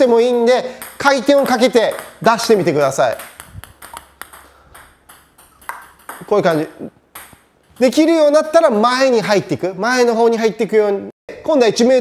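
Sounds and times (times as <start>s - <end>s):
table tennis ball clicking: 0.2s - 8.2s.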